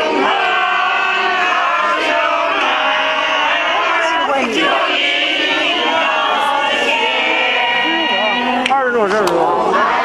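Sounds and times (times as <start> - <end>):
large crowd singing: 0.0 - 10.0.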